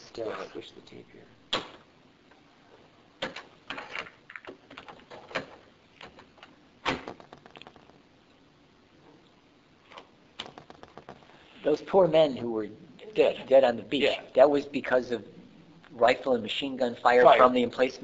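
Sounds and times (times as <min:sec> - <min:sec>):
clicks and knocks of objects: 0:03.2 - 0:08.0, 0:09.9 - 0:11.3.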